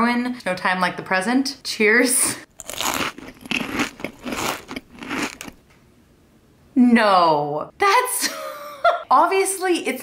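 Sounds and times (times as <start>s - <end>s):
wet chewing crunches: 2.5s - 5.6s.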